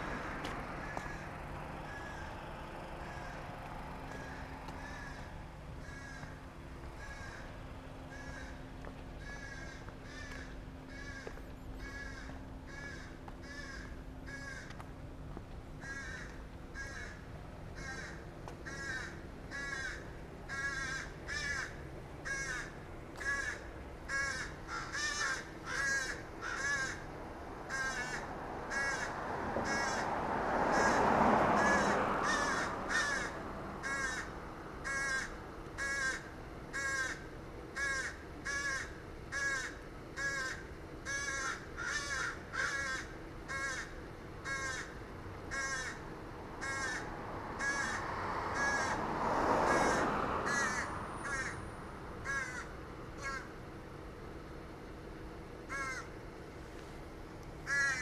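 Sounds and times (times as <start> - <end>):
crow cawing: 0.8 - 6.4, 7.0 - 14.8, 15.8 - 27.1, 27.7 - 46.0, 46.6 - 53.5, 55.7 - 56.2, 57.6 - 58.0.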